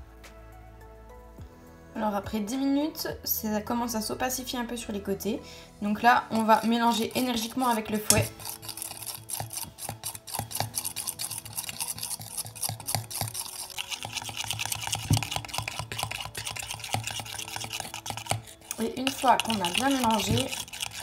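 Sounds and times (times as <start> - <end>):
metal whisk clicking in metal bowl: 6.4 - 21.0.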